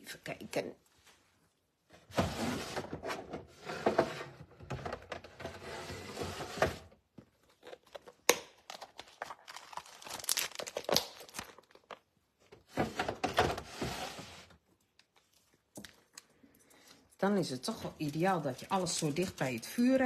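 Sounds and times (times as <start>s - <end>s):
plastic packaging crinkling: 7.4s - 12.2s
clicks and crackles: 7.5s - 12.1s.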